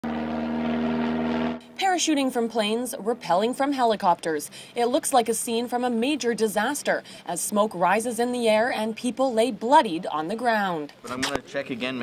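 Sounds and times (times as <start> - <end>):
propeller aircraft drone: 0.0 - 4.8
woman narrating: 1.7 - 11.0.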